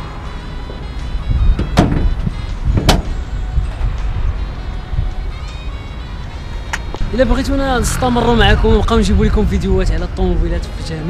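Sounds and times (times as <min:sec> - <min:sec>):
car bonnet thudding shut: 0:01.5 - 0:03.2.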